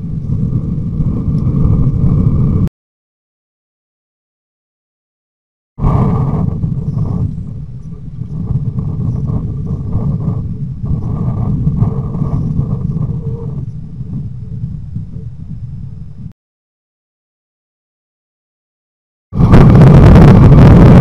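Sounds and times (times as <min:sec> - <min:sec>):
faint steady whine: 0:05.8 - 0:16.3
loud low rumble: 0:05.8 - 0:16.3, 0:19.4 - 0:21.0.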